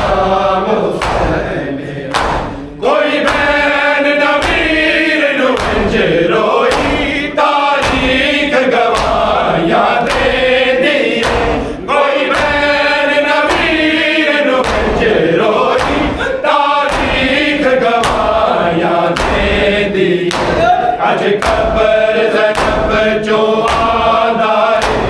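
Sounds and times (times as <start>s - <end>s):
crowd of men chanting: 0.0s - 25.0s
hands slapping bare chests: 0.9s - 1.4s, 2.1s - 12.8s, 14.6s - 18.4s, 19.1s - 24.2s, 24.8s - 25.0s.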